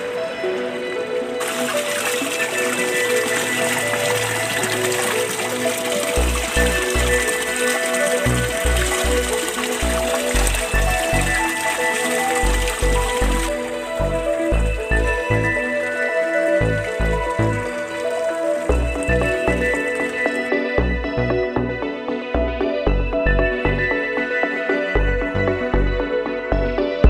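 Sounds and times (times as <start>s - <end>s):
water gushing from pipe into tank: 0.0s - 21.7s
background music with pulsing beat: 0.0s - 27.0s.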